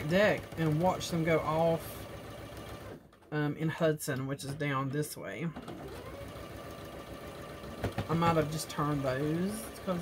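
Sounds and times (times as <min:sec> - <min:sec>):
sewing machine running: 0:00.0 - 0:03.2, 0:05.6 - 0:10.0.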